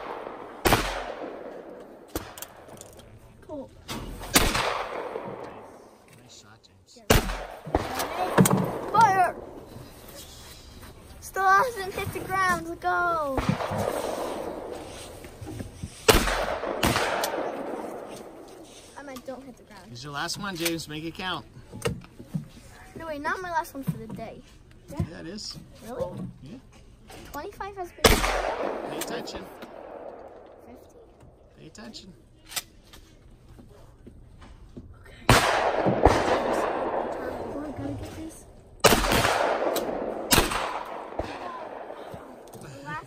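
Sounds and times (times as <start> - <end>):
sharp crack: 0.0 - 2.7, 3.9 - 5.9, 7.1 - 9.2, 16.0 - 18.5, 28.0 - 30.5, 35.3 - 37.4, 38.8 - 42.1
shotgun shots: 0.0 - 2.7, 4.2 - 6.0, 7.1 - 9.5, 13.4 - 14.8, 16.0 - 18.5, 28.0 - 30.4, 35.3 - 37.6, 38.8 - 42.4.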